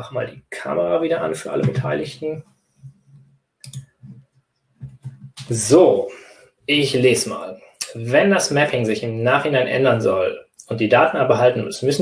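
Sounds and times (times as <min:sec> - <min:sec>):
computer mouse clicks: 0:02.8 - 0:04.2.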